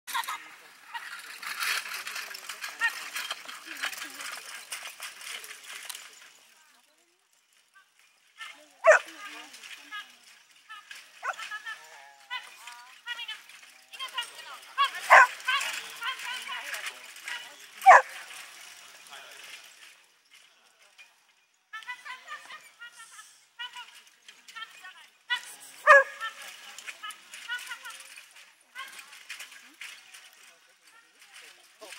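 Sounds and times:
people talking: 0:02.0 - 0:07.3, 0:08.4 - 0:19.4, 0:21.8 - 0:23.9, 0:24.5 - 0:31.9.

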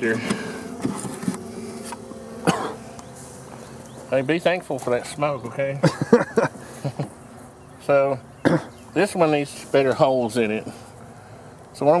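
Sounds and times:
bees buzzing: 0:00.0 - 0:12.0
person coughing: 0:02.4 - 0:02.8, 0:05.8 - 0:06.4, 0:08.4 - 0:08.8.

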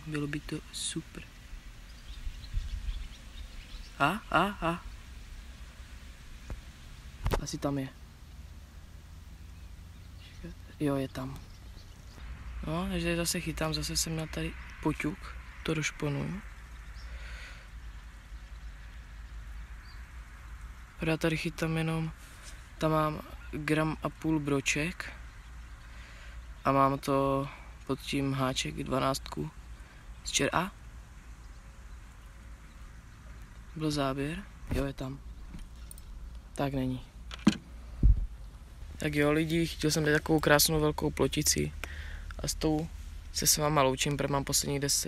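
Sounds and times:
steady low rumble: 0:00.0 - 0:45.0
dull low thump: 0:37.4 - 0:39.0.

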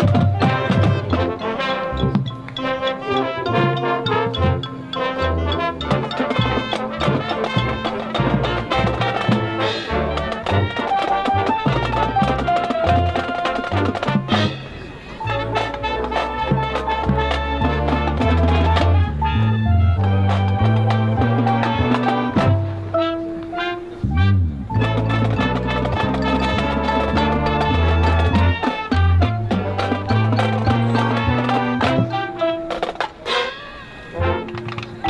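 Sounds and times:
marching band playing: 0:00.0 - 0:35.0.

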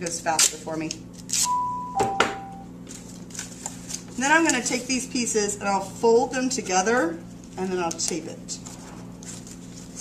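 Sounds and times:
masking tape tearing: 0:01.2 - 0:01.5
two-note electronic chime: 0:01.5 - 0:02.7.

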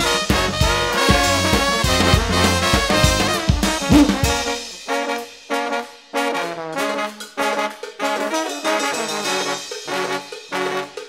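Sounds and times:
brass band horns playing punchy phrases: 0:00.0 - 0:11.0.

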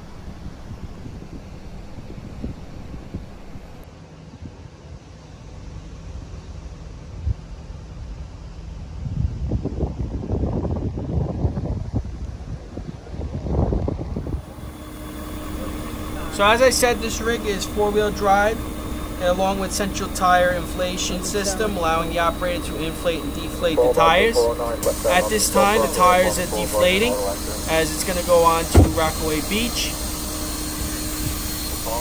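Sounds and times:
vehicle engine idling: 0:00.0 - 0:03.8, 0:14.4 - 0:32.0
wind buffeting microphone: 0:00.0 - 0:03.8, 0:09.0 - 0:17.0.

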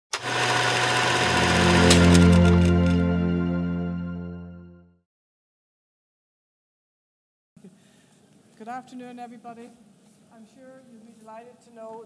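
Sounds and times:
low synth chord: 0:00.4 - 0:05.0.

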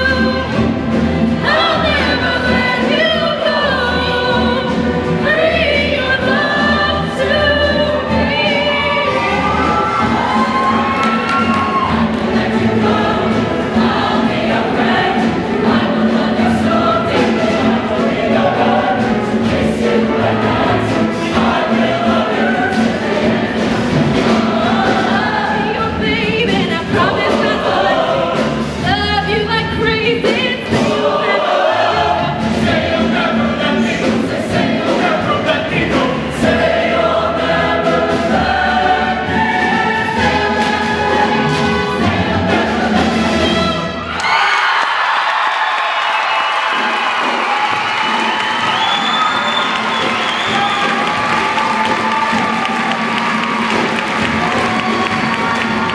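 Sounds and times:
choir singing: 0:00.0 - 0:44.2, 0:45.3 - 0:55.9.

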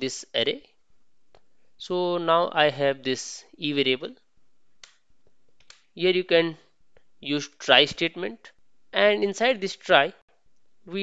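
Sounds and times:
person speaking: 0:00.0 - 0:00.7, 0:01.8 - 0:04.2, 0:05.6 - 0:10.2.

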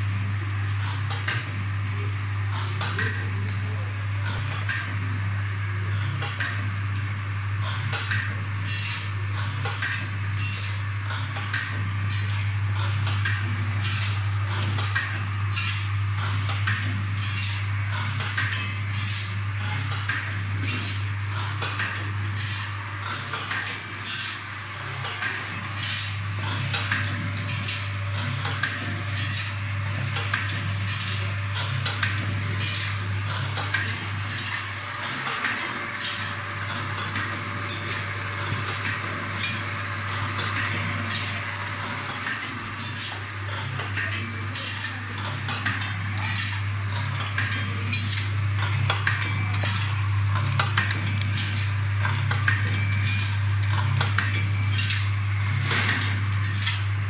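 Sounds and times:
vibratory bowl feeder humming: 0:00.0 - 0:57.0
machine clacking: 0:08.0 - 0:57.0.

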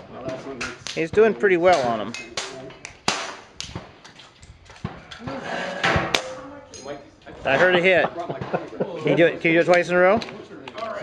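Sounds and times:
air rifle shot: 0:03.0 - 0:03.9.

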